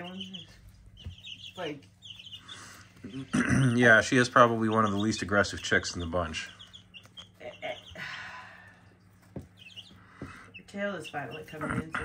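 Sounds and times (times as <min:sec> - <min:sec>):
chicks peeping: 0:00.0 - 0:12.0
low steady hum: 0:00.0 - 0:12.0.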